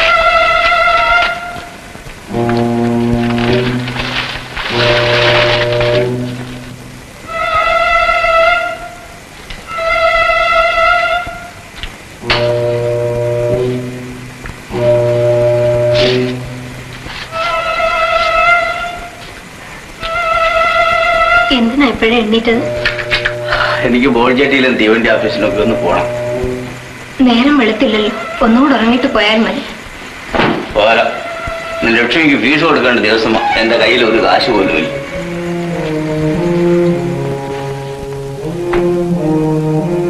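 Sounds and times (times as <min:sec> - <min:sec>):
long wind instrument note: 0:12.2 - 0:19.2, 0:22.6 - 0:27.0
low held note of film score: 0:22.5 - 0:27.2.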